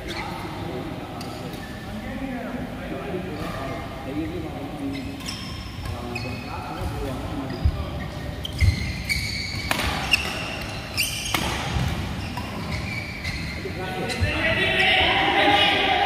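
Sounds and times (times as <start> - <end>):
shoe squeaks: 0.0 - 0.5, 4.8 - 15.0
racket striking shuttlecock: 9.6 - 12.6.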